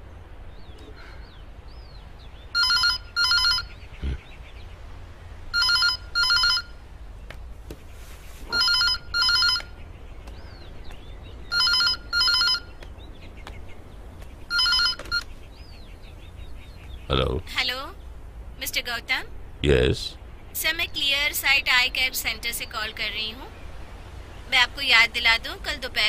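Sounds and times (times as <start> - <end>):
telephone ringing: 2.6 - 3.7, 5.5 - 6.8, 8.5 - 9.7, 11.5 - 12.7, 14.5 - 15.2.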